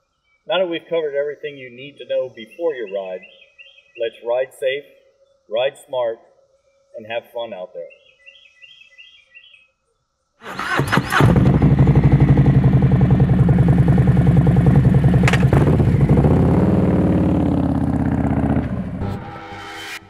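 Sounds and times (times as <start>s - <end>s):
motorcycle engine starting and idling: 10.4s - 19.0s
motorcycle revving: 10.5s - 19.4s.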